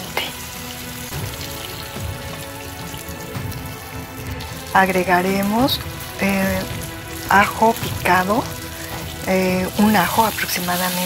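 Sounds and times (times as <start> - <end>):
rice and peppers sizzling in oil: 0.0 - 11.0.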